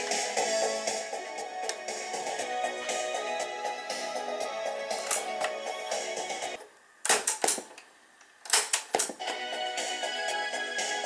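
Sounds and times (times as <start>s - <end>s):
music from cassette deck: 0.0s - 6.6s, 9.1s - 11.0s.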